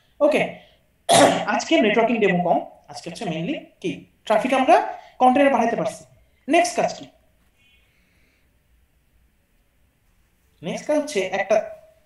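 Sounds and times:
person talking: 0:00.2 - 0:07.2, 0:10.6 - 0:11.9.

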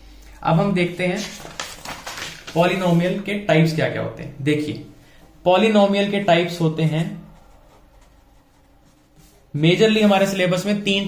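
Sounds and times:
pen scratching on paper: 0:07.3 - 0:09.5.

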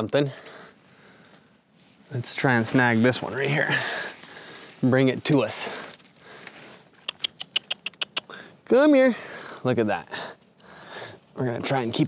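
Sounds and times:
branch and leaves crackling: 0:00.4 - 0:07.7.

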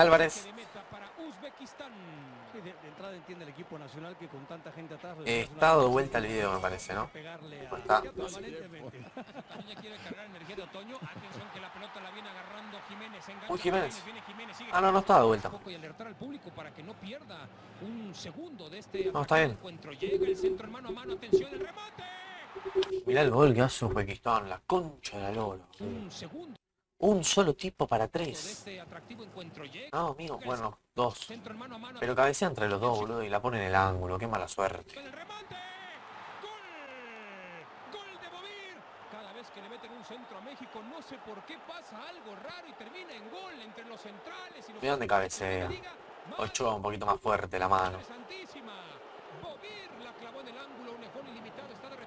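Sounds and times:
sports commentator speaking: 0:00.0 - 0:22.1, 0:22.7 - 0:26.4, 0:27.0 - 0:52.0
stadium crowd noise: 0:00.0 - 0:24.1, 0:33.9 - 0:52.0
man's voice: 0:05.2 - 0:08.9, 0:18.8 - 0:21.8.

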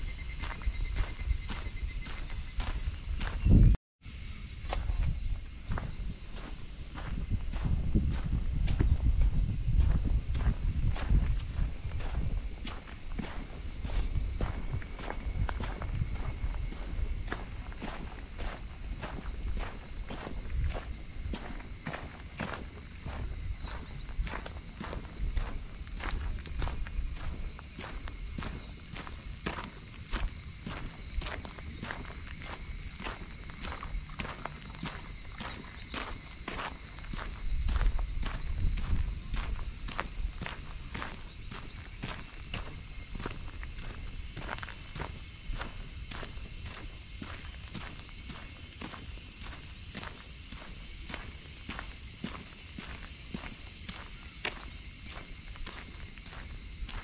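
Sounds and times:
footsteps on dirt path: 0:00.0 - 0:57.0
high-pitched hiss: 0:00.0 - 0:57.0.

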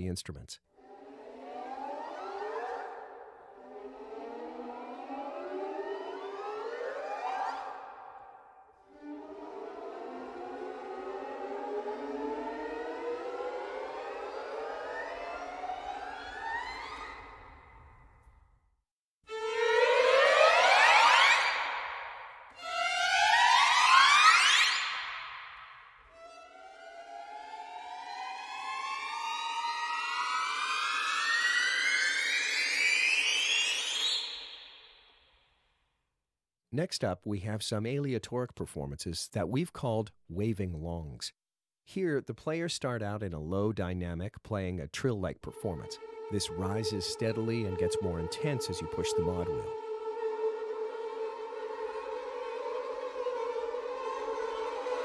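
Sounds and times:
violin glissandos: 0:08.9 - 0:17.7, 0:19.3 - 0:34.2, 0:45.4 - 0:55.0.

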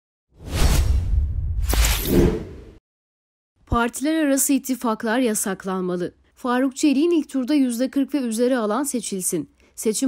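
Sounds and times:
whoosh sound effect: 0:00.4 - 0:02.8.

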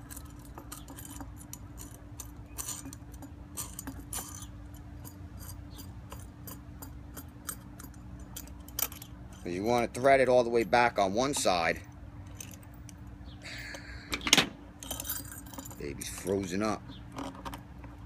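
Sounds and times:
metal nuts and washers rattling: 0:00.0 - 0:18.0.

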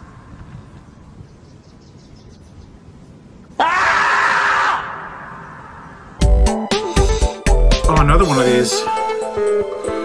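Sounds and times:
loud drawn-out scream: 0:03.6 - 0:06.2.

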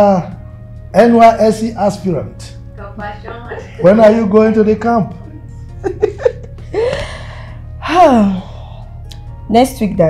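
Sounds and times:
soft background music: 0:00.0 - 0:10.0
woman gasping: 0:06.7 - 0:09.0
woman sighing: 0:06.7 - 0:09.0.

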